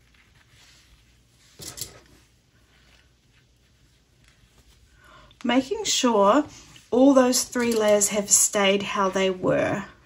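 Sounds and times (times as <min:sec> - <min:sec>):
rustling and scraping of fabric: 0:00.0 - 0:05.0.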